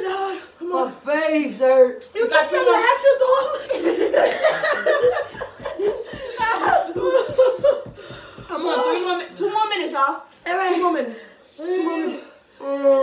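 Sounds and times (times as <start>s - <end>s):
women laughing and exclaiming: 2.7s - 8.0s
long rhythmic laugh: 3.6s - 7.9s.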